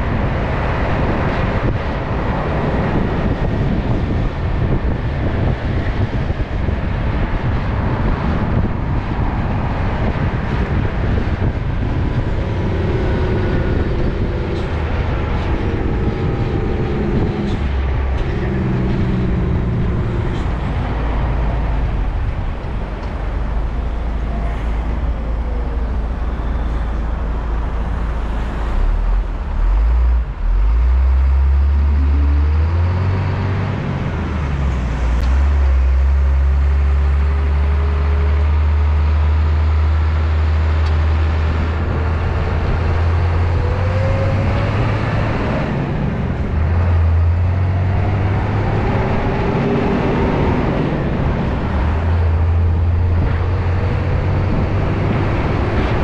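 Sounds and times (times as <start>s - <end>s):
road and traffic noise: 0.0s - 56.0s
truck engine drone: 0.0s - 56.0s.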